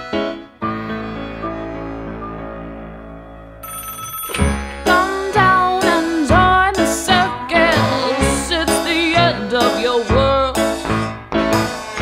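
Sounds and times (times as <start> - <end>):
loud music: 0.0 - 3.6, 4.4 - 12.0
soft keyboard music: 0.0 - 12.0
telephone bell ringing: 3.5 - 6.1.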